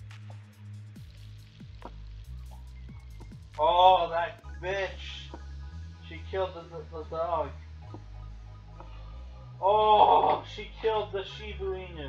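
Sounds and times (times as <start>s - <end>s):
low droning score: 0.0s - 12.0s.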